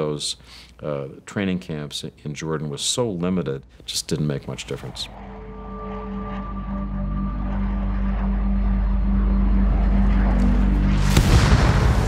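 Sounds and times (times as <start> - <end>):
jet aircraft roar: 4.3 - 12.0.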